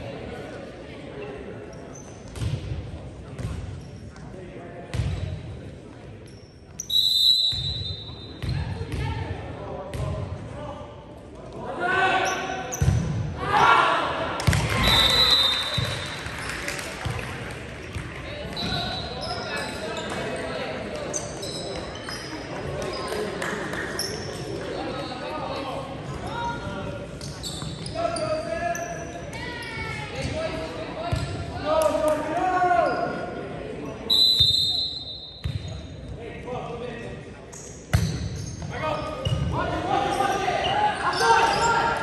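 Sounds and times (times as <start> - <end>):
short high whistle blasts: 6.9 - 8.0, 14.8 - 16.0, 34.1 - 35.4.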